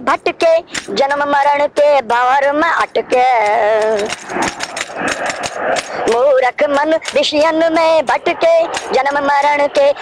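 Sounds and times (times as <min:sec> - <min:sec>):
rough hiss with irregular clicks: 0:03.2 - 0:06.2, 0:06.8 - 0:10.0.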